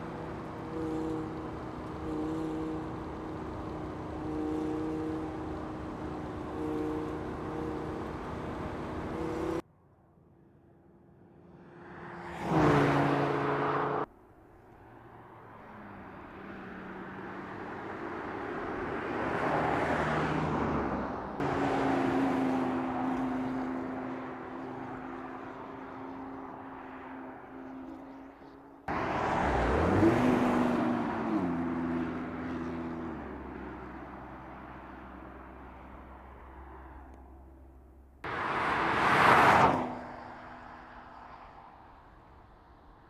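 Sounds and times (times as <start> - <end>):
car engine passing by: 11.5 - 14.1.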